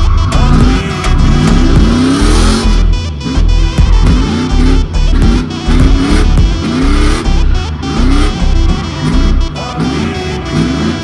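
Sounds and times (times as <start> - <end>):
car engine revving: 0.0 - 11.0
electronic music with heavy beat: 0.0 - 11.0.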